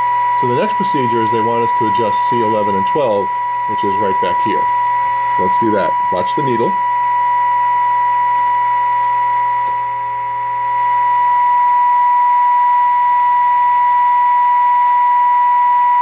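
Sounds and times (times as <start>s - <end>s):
steady test tone from radio speaker: 0.0s - 16.0s.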